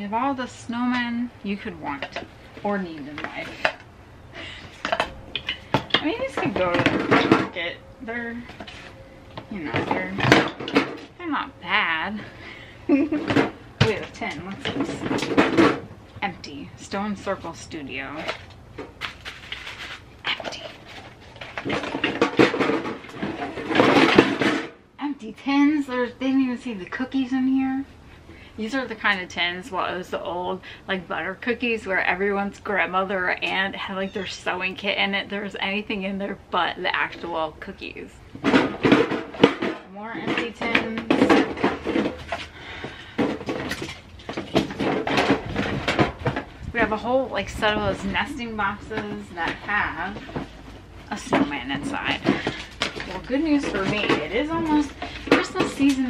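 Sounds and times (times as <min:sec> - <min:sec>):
metal tins clattering and scraping: 0:04.6 - 0:12.4, 0:13.0 - 0:15.9, 0:16.8 - 0:24.8, 0:38.4 - 0:56.0.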